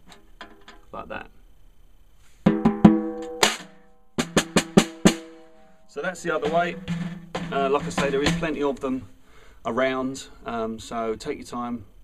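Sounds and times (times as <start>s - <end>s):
snare drum hits: 2.5s - 5.5s, 6.3s - 8.8s.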